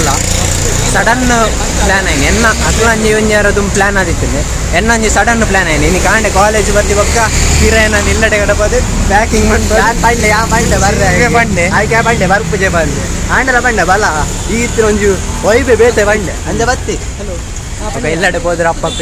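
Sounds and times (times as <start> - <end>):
men talking excitedly: 0.0 - 19.0
road traffic engine rumble: 0.0 - 19.0.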